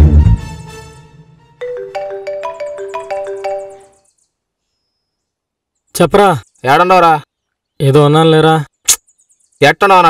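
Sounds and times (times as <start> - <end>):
marimba-like phone ringtone: 1.6 - 4.0.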